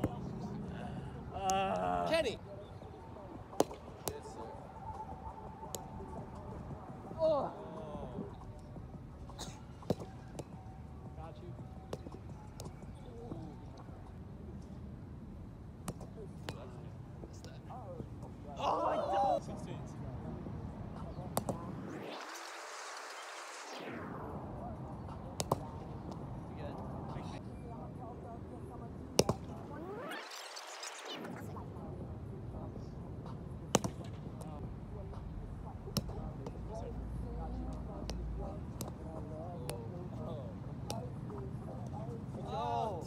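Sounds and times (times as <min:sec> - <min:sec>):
faint voices talking: 0:00.0 - 0:22.8, 0:23.7 - 0:43.0
ball slaps on hands and net: 0:03.6 - 0:04.3, 0:21.3 - 0:21.6, 0:25.4 - 0:26.2, 0:29.2 - 0:29.5, 0:33.7 - 0:34.5, 0:38.0 - 0:39.0
ball struck with sharp smack: 0:25.4 - 0:26.2, 0:29.2 - 0:29.6, 0:33.7 - 0:34.2.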